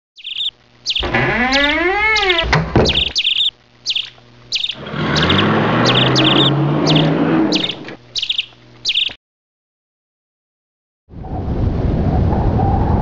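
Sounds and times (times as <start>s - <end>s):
birds chirping: 0.2s - 9.2s
rising and falling bird call: 0.2s - 9.2s.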